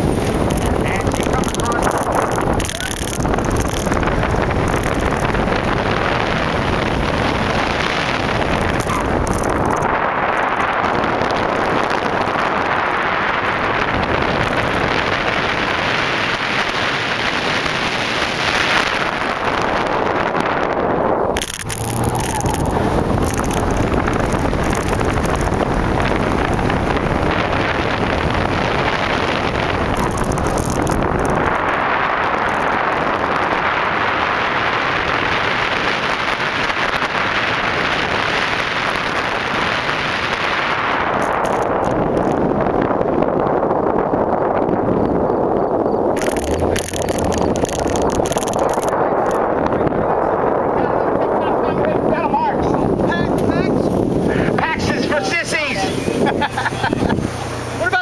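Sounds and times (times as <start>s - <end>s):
wind on microphone: 0.0s - 58.0s
car engine revving hard: 10.8s - 42.2s
tyres on track: 46.0s - 58.0s.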